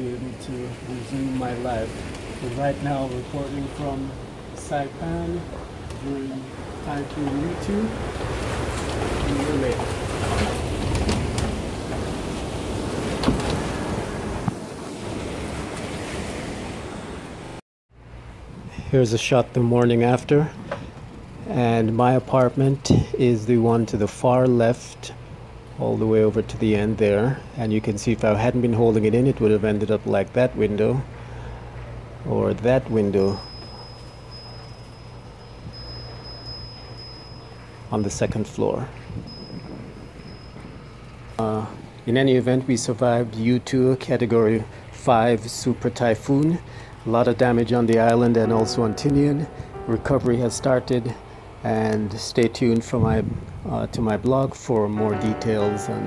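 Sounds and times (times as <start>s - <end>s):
faint high-pitched pings: 33.1s - 38.4s, 48.4s - 52.7s, 55.0s - 56.0s
faint thin high tone: 48.5s - 51.7s.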